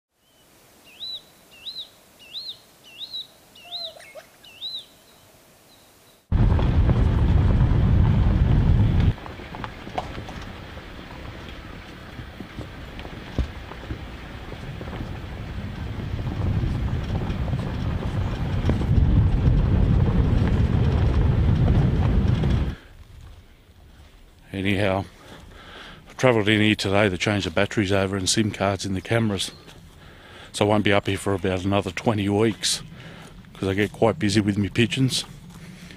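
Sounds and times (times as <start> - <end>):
bird whistling call: 0.2 - 5.9
vehicle driving on dirt track: 6.3 - 22.9.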